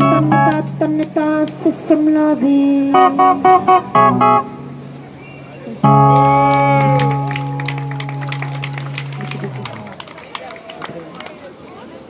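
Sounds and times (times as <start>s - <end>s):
street crowd chatter: 0.0s - 12.0s.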